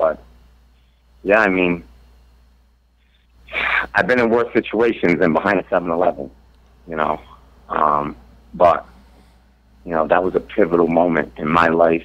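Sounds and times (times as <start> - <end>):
man talking: 0.0 - 0.2, 1.2 - 1.9, 3.5 - 8.9, 9.8 - 12.0
faint low hum: 0.0 - 12.0.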